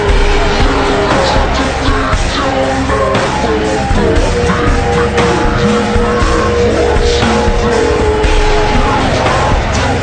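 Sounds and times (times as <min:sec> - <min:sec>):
distorted heavy rock band: 0:00.0 - 0:10.0.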